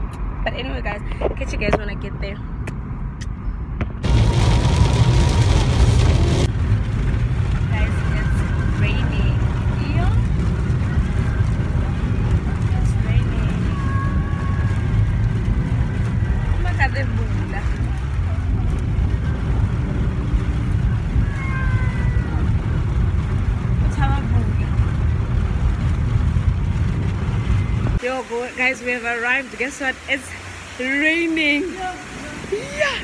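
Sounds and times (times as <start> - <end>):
road rumble inside car: 0.0 - 29.5.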